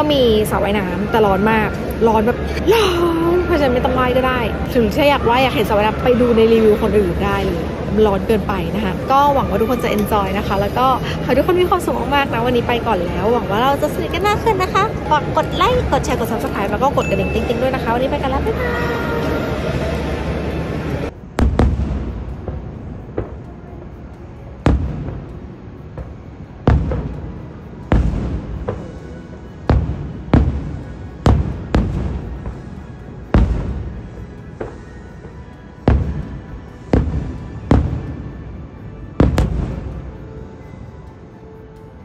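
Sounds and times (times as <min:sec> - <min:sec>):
music: 0:00.0 - 0:42.0
steady background noise: 0:00.0 - 0:42.0.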